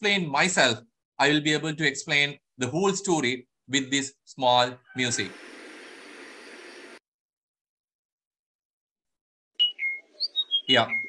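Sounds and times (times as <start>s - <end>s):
songbird singing: 9.6s - 11.0s.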